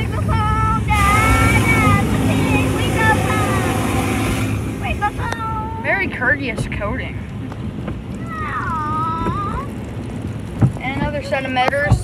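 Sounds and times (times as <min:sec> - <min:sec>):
low rumble of wash equipment: 0:00.0 - 0:12.0
high-pitched squeals: 0:00.8 - 0:05.6.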